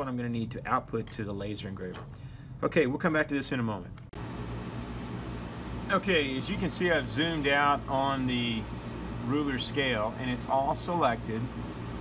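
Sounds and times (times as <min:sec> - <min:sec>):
machinery hum and hiss: 0:03.6 - 0:12.0.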